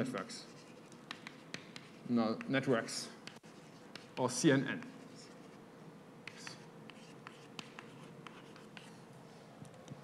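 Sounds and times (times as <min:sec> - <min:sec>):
chalk on blackboard: 0:00.0 - 0:05.6, 0:06.2 - 0:09.1.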